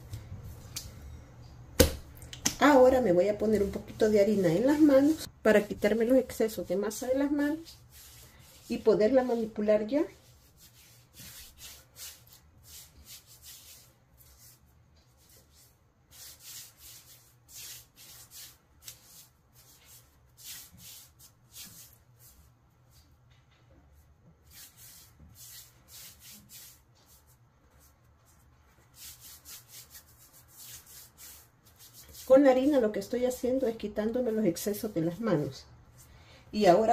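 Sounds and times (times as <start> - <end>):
hands rubbing dough off palms: 3.6 - 23.2, 24.4 - 36.1.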